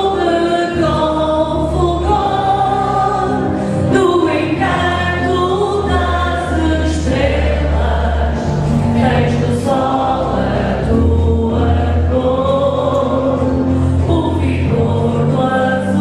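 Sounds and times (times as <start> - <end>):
choir singing held chords: 0.0 - 16.0.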